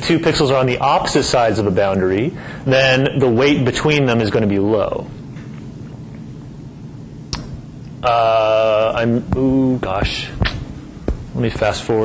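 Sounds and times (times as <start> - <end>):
steady low hum: 0.0 - 12.0
sharp click: 7.3 - 7.6.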